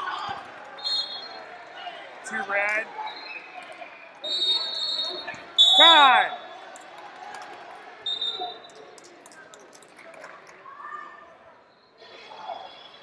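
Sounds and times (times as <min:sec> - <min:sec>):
loud shout: 0:00.0 - 0:00.5, 0:05.7 - 0:06.4.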